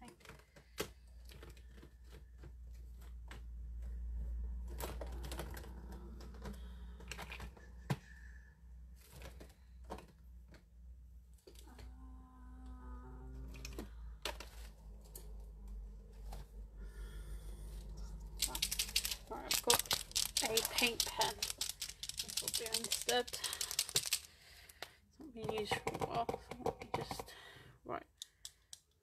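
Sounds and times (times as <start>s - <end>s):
craft supplies rummaged on desk: 0.0s - 8.2s, 8.8s - 11.9s, 13.5s - 16.8s, 17.6s - 27.4s.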